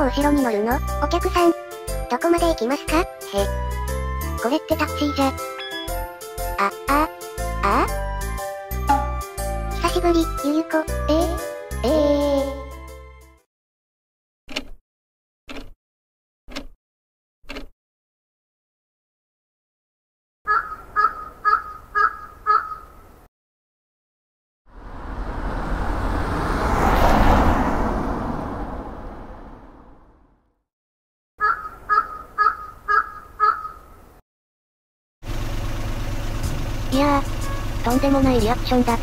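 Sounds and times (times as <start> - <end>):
crows cawing: 20.5 - 23.0, 31.4 - 34.0
low car engine hum: 24.7 - 30.1, 35.3 - 39.0
whoosh: 24.7 - 30.3.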